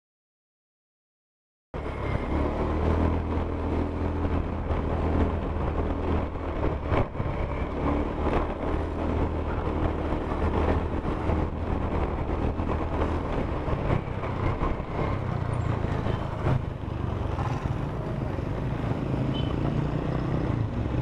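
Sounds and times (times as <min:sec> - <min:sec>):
road noise: 0:01.8 - 0:21.0
wind noise: 0:01.8 - 0:21.0
motorcycle engine running: 0:01.9 - 0:21.0.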